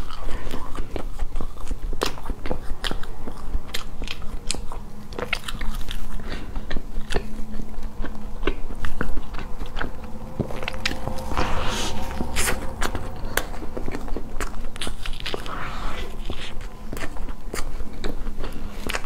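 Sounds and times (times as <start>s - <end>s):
chewing mouth sounds: 0.0s - 19.0s.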